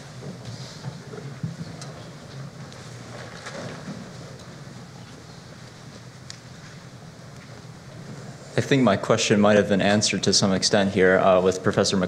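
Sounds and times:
faint clicks and rustles: 0.0 - 8.4
low room hum: 0.0 - 12.0.

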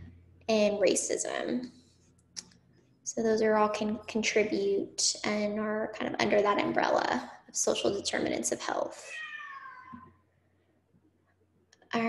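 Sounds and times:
cat meowing: 9.1 - 10.0.

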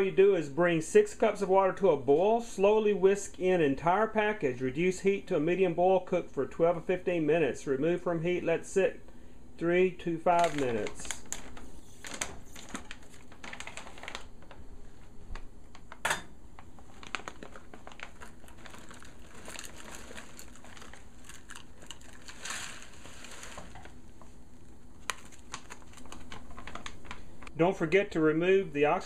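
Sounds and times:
foil pouch crinkling: 10.2 - 14.7, 16.6 - 27.5
pasta clicking and rattling in pot: 17.0 - 24.0.

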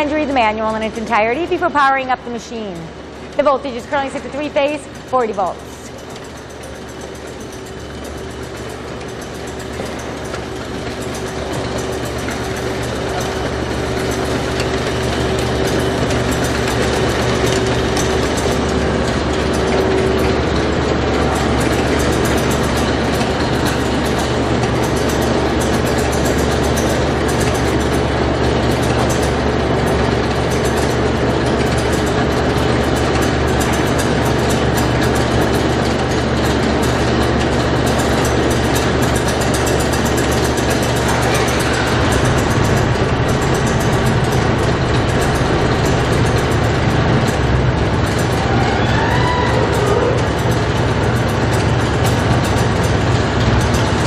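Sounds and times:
conveyor motor humming: 0.0 - 54.0.

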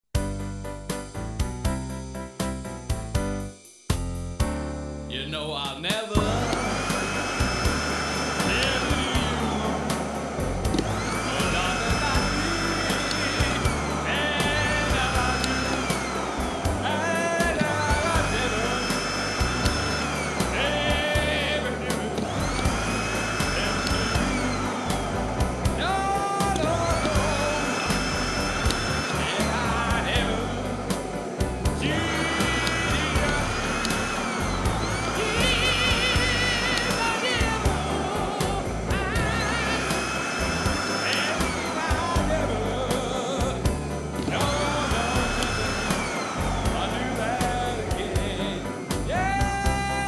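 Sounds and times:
rock and roll drums and bass: 0.1 - 4.8, 5.7 - 50.0
vacuum cleaner motor whining: 6.2 - 48.9.

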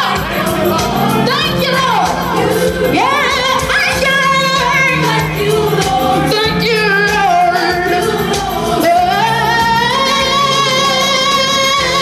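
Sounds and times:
backing music: 0.0 - 12.0
boy singing into microphone: 2.8 - 12.0.

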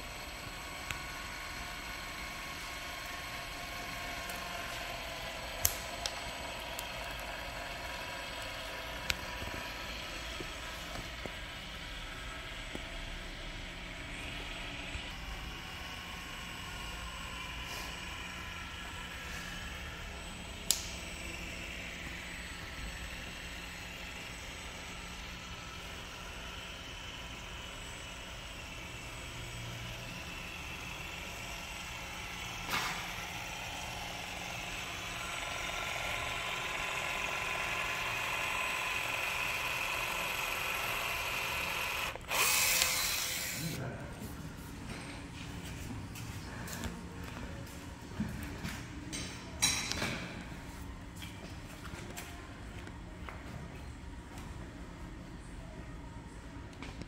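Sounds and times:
caulking gun motor whirring: 0.0 - 43.8
sharp click: 20.7 - 21.0.

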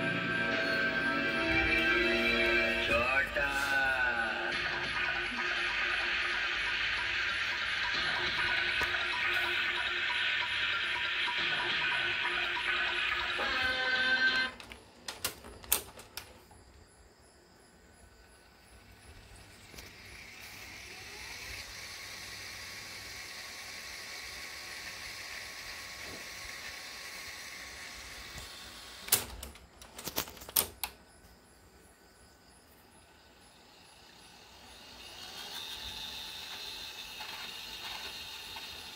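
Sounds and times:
video cassette player hiss: 0.0 - 16.5, 18.8 - 31.0, 34.0 - 38.9
tape transport whirring: 0.0 - 16.8, 18.4 - 31.0, 33.2 - 38.9.

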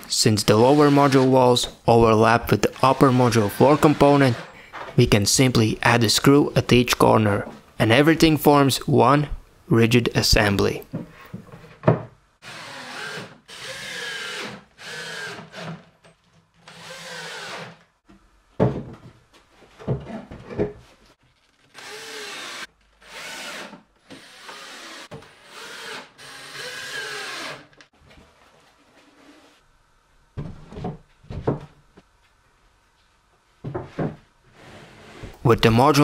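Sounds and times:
drill driving screws into wood: 12.4 - 15.9, 16.6 - 17.8, 21.7 - 27.8.

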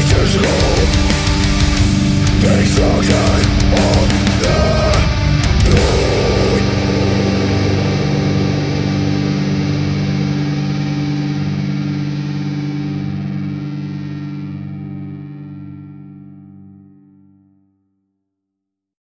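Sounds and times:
distorted electric guitar chord ringing: 0.0 - 17.3.

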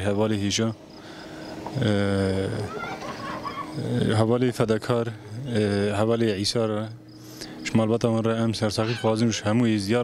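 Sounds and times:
man's drawn-out hesitation sound: 3.6 - 10.0.

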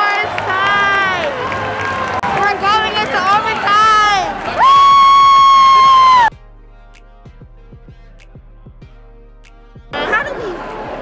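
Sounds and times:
faint music with soft beat: 5.7 - 11.0.

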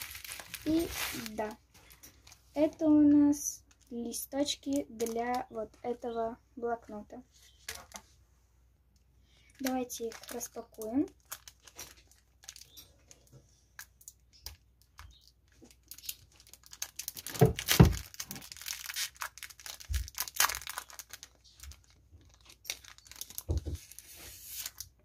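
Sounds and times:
plastic packaging crinkling: 0.0 - 6.0, 9.4 - 25.0.

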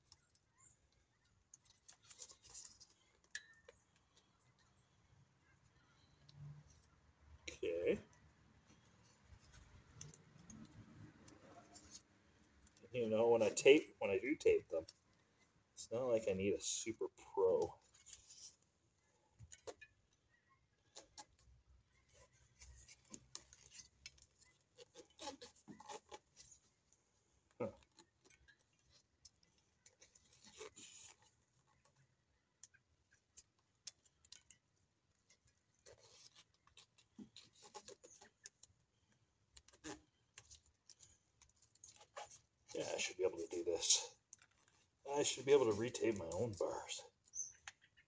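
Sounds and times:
tape rubbing and crinkling: 0.0 - 48.0.

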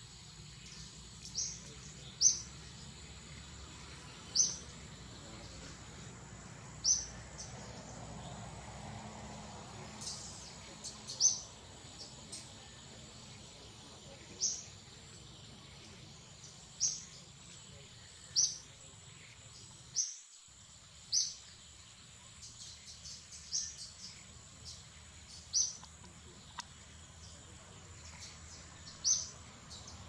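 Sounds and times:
bird chirping: 0.0 - 6.1, 6.7 - 8.6, 9.3 - 30.0
soft background hiss: 0.0 - 30.0.

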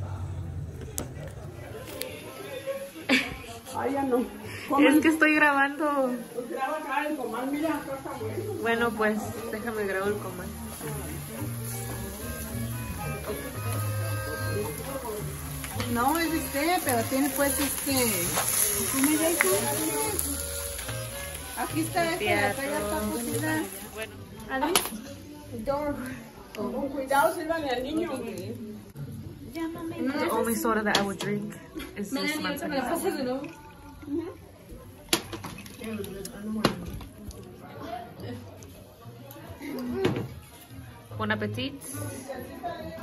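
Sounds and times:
quiet talk: 0.0 - 4.9, 23.4 - 43.0
people talking: 7.5 - 25.0
background music: 7.6 - 31.5.

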